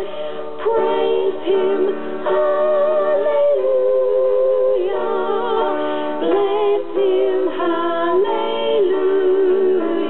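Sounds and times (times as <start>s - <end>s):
women singing gospel song: 0.0s - 10.0s.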